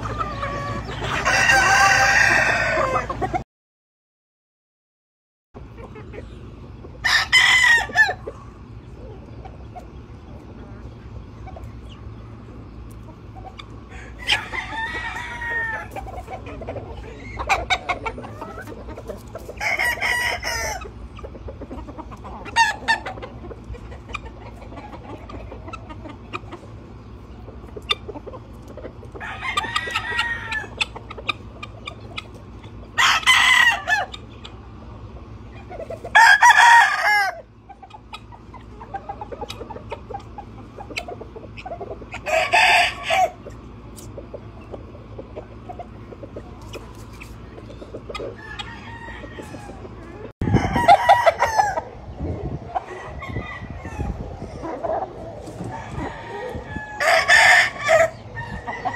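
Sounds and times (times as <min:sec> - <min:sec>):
roosters crowing: 0:00.0 - 0:03.4, 0:05.6 - 0:58.9.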